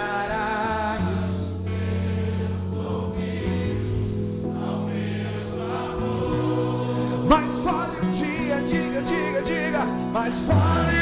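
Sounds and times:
slow church worship music: 0:00.0 - 0:11.0
voices singing: 0:00.0 - 0:11.0.

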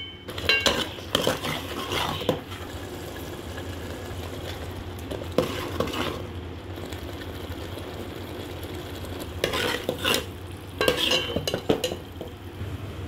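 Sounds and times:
spoon scraping pan: 0:00.3 - 0:02.8, 0:05.3 - 0:06.2, 0:09.4 - 0:12.0
spoon stirring sizzling gravy: 0:00.3 - 0:12.6.

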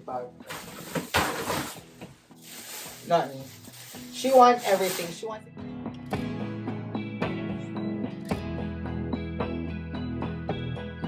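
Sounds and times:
faint background music: 0:00.0 - 0:09.5
plastic bag rustling: 0:00.4 - 0:05.4.

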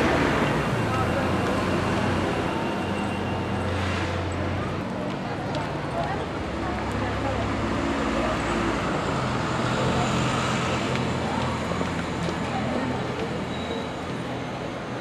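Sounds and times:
diesel bus engine passing: 0:00.0 - 0:15.0
street traffic noise: 0:00.0 - 0:15.0.

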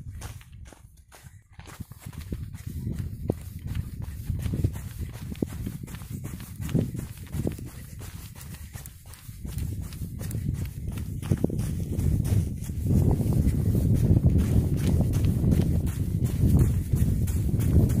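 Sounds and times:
footsteps on sand and rock: 0:00.0 - 0:18.0
wind rumble on microphone: 0:00.0 - 0:18.0.

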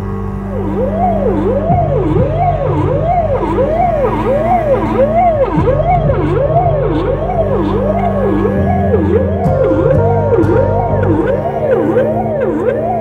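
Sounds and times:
electronic vehicle siren wailing: 0:00.0 - 0:13.0.

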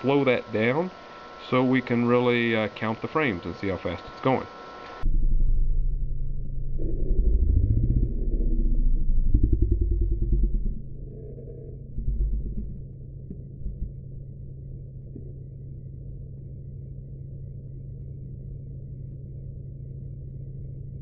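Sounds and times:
steady low hum: 0:00.0 - 0:21.0.

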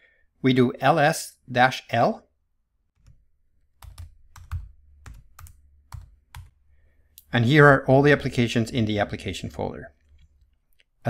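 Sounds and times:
keyboard typing: 0:03.0 - 0:06.6, 0:10.0 - 0:10.9.

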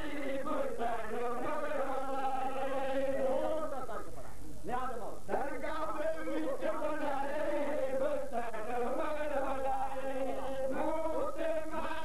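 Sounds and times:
man chanting over loudspeaker: 0:04.7 - 0:12.0.

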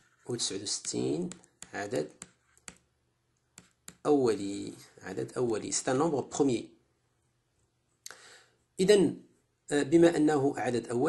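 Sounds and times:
stylus tapping on tablet screen: 0:00.7 - 0:02.9, 0:03.5 - 0:04.1.

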